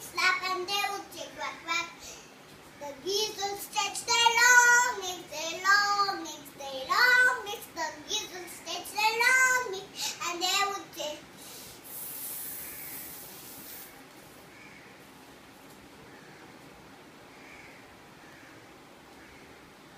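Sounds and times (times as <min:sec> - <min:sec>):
young girl singing: 0:00.0 - 0:11.4
soft hiss: 0:00.0 - 0:19.9.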